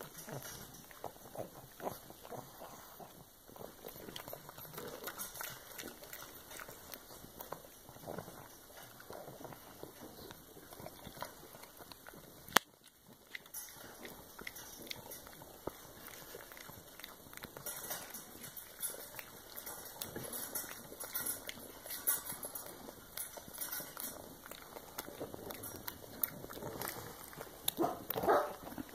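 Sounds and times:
dog crunching a treat: 0.0s - 28.9s.

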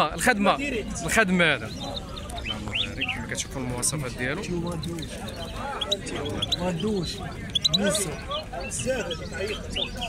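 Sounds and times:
people talking: 0.0s - 10.0s
bird singing high notes: 5.2s - 10.0s.

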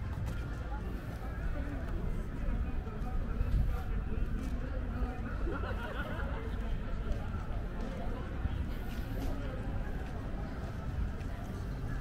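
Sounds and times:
passers-by talking: 0.0s - 12.0s.

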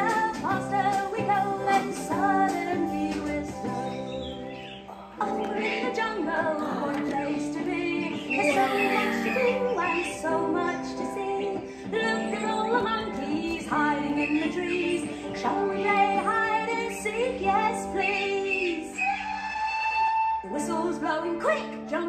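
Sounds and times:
woman singing children's song: 0.0s - 19.4s, 20.4s - 22.0s.

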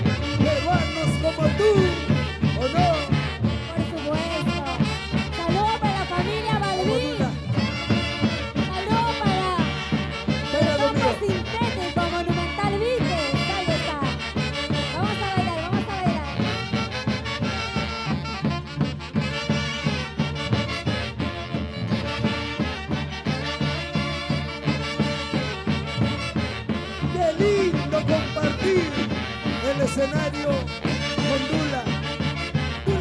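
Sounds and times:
saxophones and clarinets melody: 0.0s - 33.0s.

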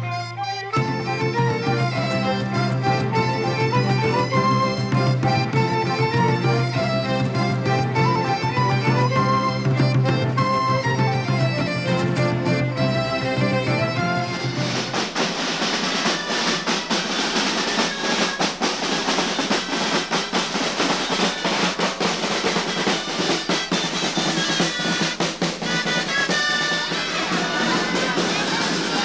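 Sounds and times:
pitched melody line: 0.0s - 15.2s
snare drum rolls: 0.8s - 29.0s.

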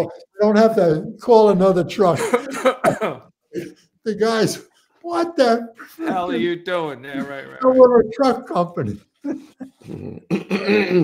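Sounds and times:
man laughing: 2.2s - 3.7s, 5.8s - 7.9s.

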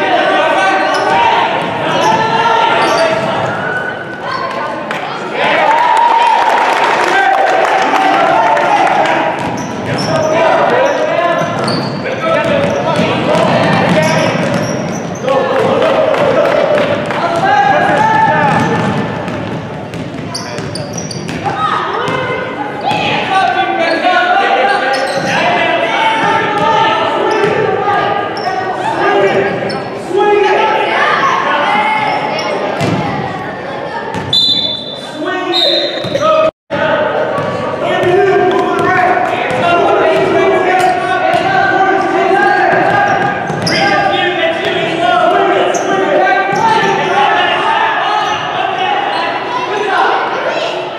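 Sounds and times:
basketball bouncing on wooden floor: 18.4s - 21.5s.

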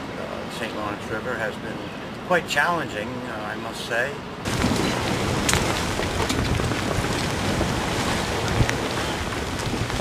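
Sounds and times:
wind buffeting microphone: 4.4s - 10.0s
raindrops spattering: 4.5s - 10.0s.

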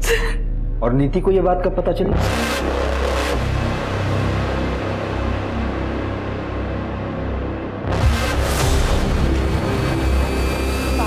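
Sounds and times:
deep bass drone score: 0.0s - 11.0s.

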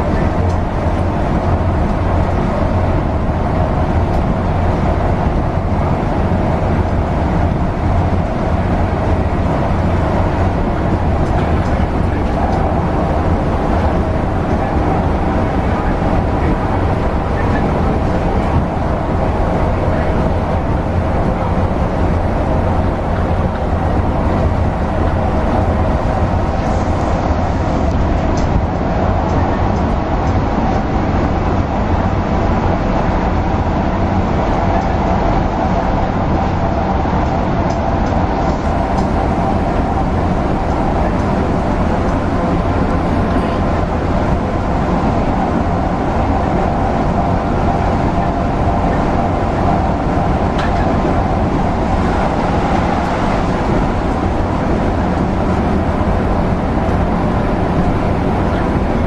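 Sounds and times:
bus engine and tyre drone: 0.0s - 59.0s.

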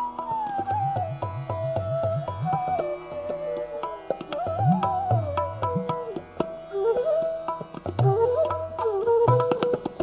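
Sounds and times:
bamboo flute melody: 0.0s - 10.0s
tabla strokes: 0.0s - 10.0s.

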